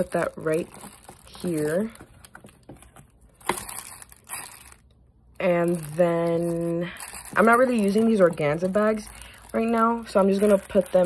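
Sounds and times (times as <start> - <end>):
plastic bags and paper rustling: 0.0 - 11.0.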